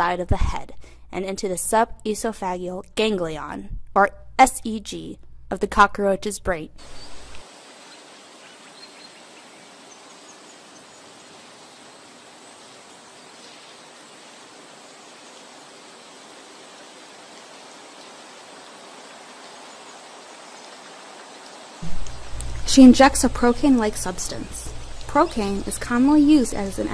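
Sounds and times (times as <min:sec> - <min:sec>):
background hiss: 0:06.7 - 0:26.9.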